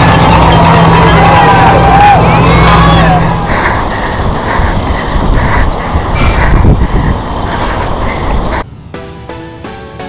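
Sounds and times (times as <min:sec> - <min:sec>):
heavy low rumble: 0:00.0 - 0:09.1
camera rattling while running: 0:03.3 - 0:08.6.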